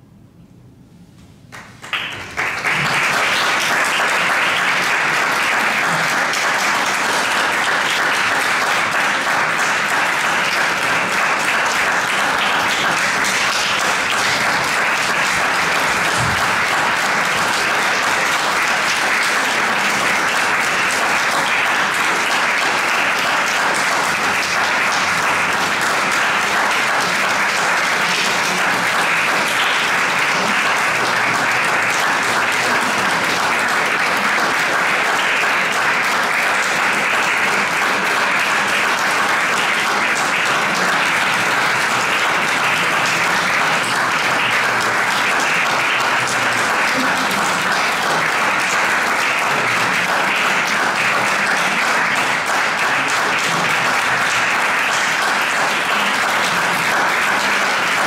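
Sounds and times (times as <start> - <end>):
audience applauding: 1.5 - 58.0.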